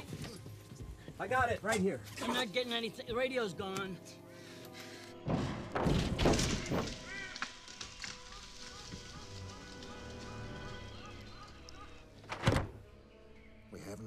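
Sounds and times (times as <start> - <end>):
background music: 0.0 - 14.0
heavy thuds and crunching: 5.2 - 9.7.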